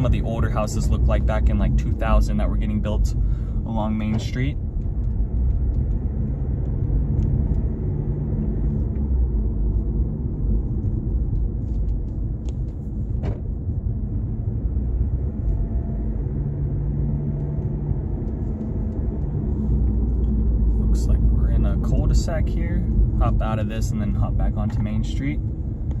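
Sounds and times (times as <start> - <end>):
car engine and tyre rumble: 0.0 - 26.0.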